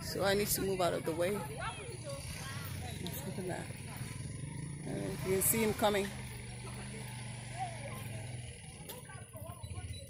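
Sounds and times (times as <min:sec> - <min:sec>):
distant motorcycle engine: 0:00.0 - 0:10.0.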